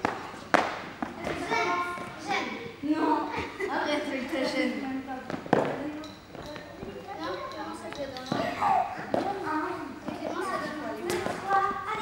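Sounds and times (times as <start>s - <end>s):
children chattering and calling: 1.2s - 12.0s.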